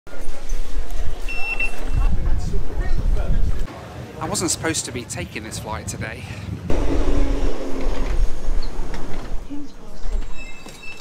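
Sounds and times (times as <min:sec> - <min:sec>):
crowd voices and rumble: 0:00.1 - 0:11.0.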